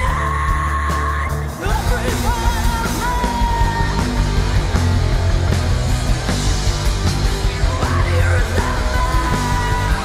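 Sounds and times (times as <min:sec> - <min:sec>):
punk rock band playing: 0:00.0 - 0:10.0.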